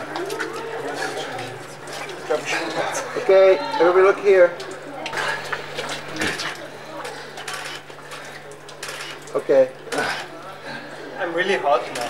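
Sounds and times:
group of people talking: 0.0s - 12.0s
steady low hum: 4.1s - 12.0s.

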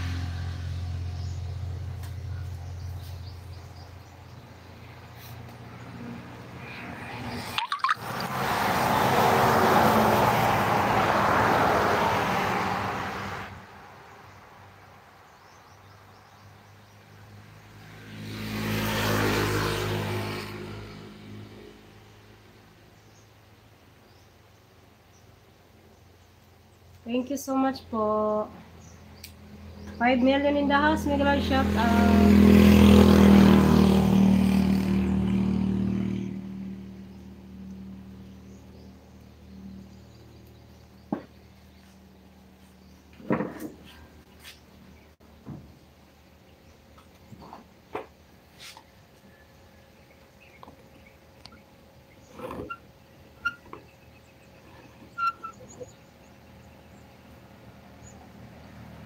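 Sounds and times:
vehicle passing on road: 0.0s - 24.2s, 27.8s - 59.0s.

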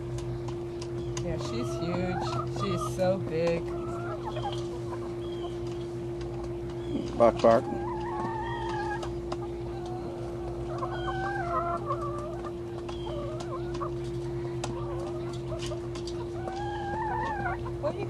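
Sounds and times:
hens clucking: 0.0s - 18.0s
steady hum: 0.0s - 18.0s.

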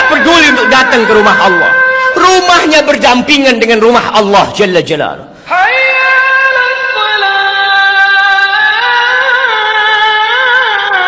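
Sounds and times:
person singing long notes: 0.0s - 2.3s, 5.5s - 11.0s.

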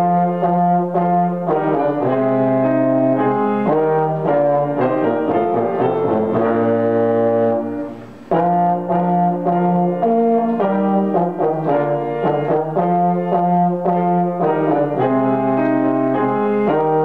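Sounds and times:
brass horn playing: 0.0s - 17.0s
grand piano playing: 0.0s - 17.0s.

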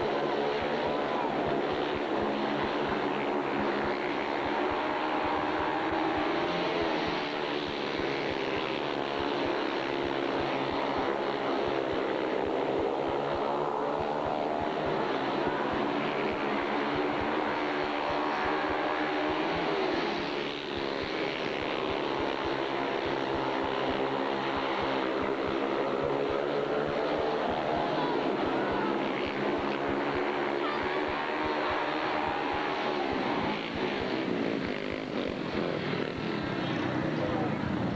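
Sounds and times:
motorcycle engines racing: 0.0s - 37.9s.

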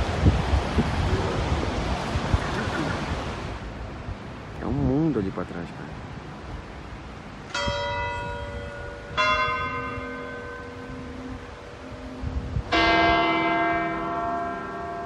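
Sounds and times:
church bell tolling: 7.5s - 15.0s.

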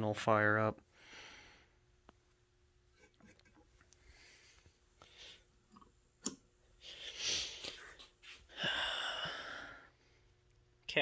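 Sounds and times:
man exhaling breathily: 8.5s - 10.0s.

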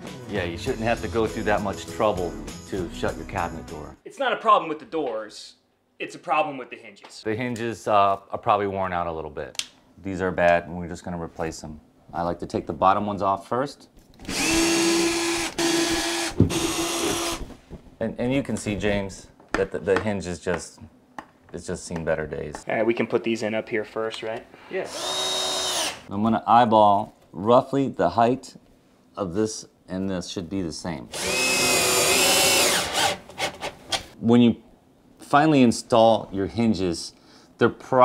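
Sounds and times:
cordless drill motor running: 14.3s - 17.4s, 24.9s - 26.1s, 31.2s - 33.2s.

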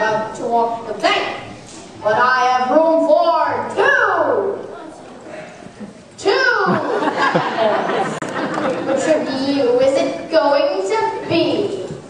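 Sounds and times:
children talking and calling out: 0.0s - 5.6s, 8.8s - 12.0s.

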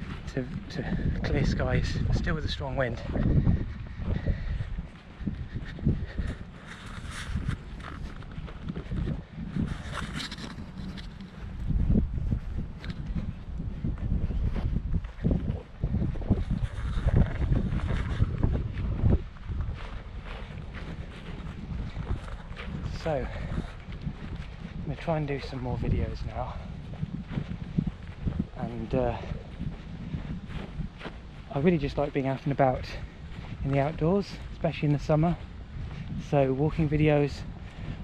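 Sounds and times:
strong wind buffeting microphone: 0.0s - 38.0s.

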